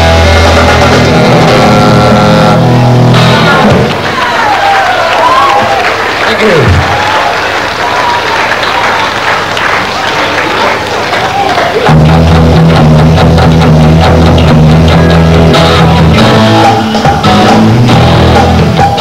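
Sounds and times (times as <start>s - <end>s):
rock band playing: 0.0s - 4.4s, 11.6s - 19.0s
applause and crowd noise: 3.2s - 16.2s.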